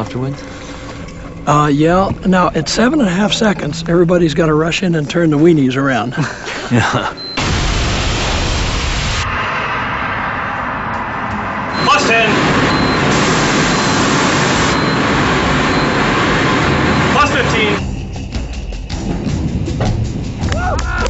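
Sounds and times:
rocket motor rushing roar: 0:07.4 - 0:17.8.

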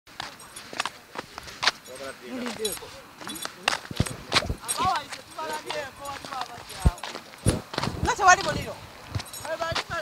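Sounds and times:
steps on rubbly ground: 0:00.1 - 0:10.0.

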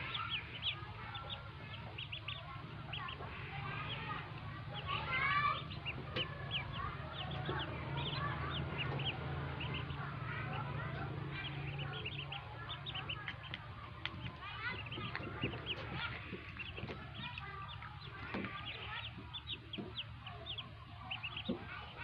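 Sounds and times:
ducklings peeping: 0:00.0 - 0:22.0.

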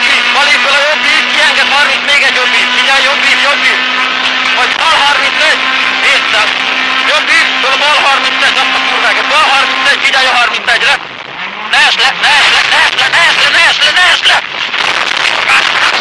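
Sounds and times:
person talking: 0:00.0 - 0:03.9, 0:04.5 - 0:11.0
rally car engine inside cabin: 0:00.0 - 0:16.0.

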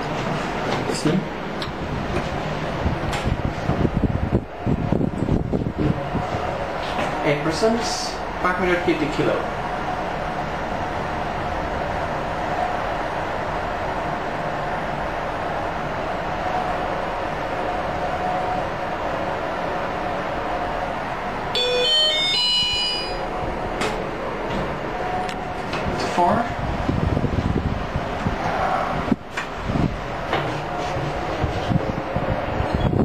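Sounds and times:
elevator arrival chime: 0:21.5 - 0:23.7.

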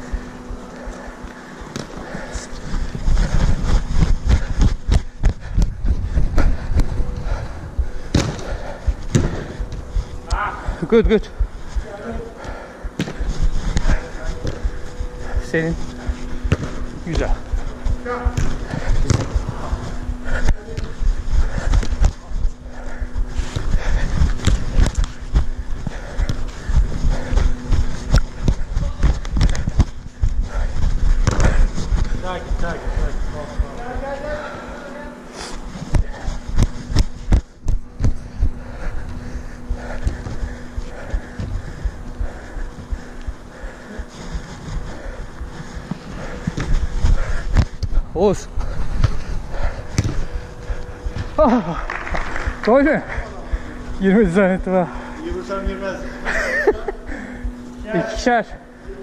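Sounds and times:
steady low hum: 0:00.0 - 0:59.0
footfalls on artificial turf: 0:12.9 - 0:34.4, 0:45.8 - 0:50.4.

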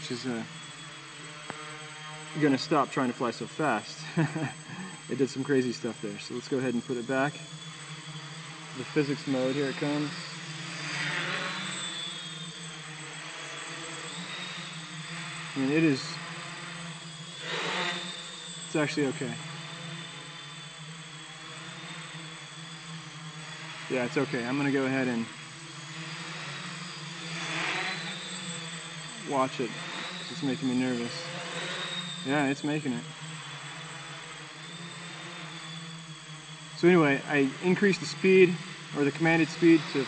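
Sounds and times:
drone motors humming: 0:00.0 - 0:40.0
quadcopter propellers buzzing: 0:00.0 - 0:40.0.

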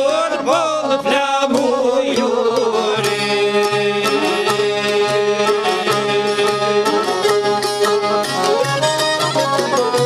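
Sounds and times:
accordion melody: 0:00.0 - 0:10.0
frame drum beat: 0:00.0 - 0:10.0
long-necked lutes: 0:00.0 - 0:10.0
violin: 0:00.0 - 0:10.0.

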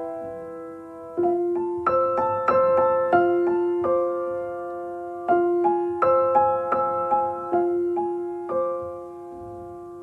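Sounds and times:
gentle piano music: 0:00.0 - 0:10.0.

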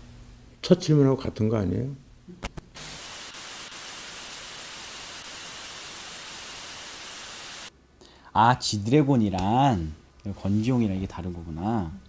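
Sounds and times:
static hiss: 0:02.4 - 0:07.7.

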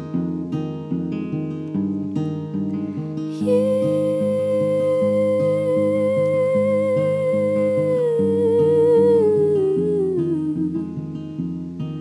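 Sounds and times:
acoustic guitar strumming: 0:00.0 - 0:12.0
woman humming: 0:03.3 - 0:11.0.

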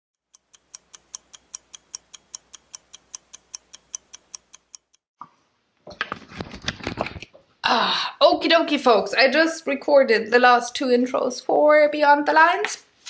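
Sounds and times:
clock ticking: 0:00.2 - 0:05.0.

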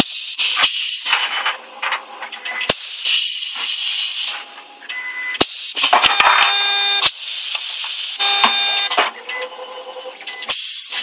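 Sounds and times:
air hiss bursts: 0:00.0 - 0:01.2, 0:02.7 - 0:04.5, 0:05.4 - 0:05.9, 0:07.1 - 0:08.2, 0:10.5 - 0:11.0.

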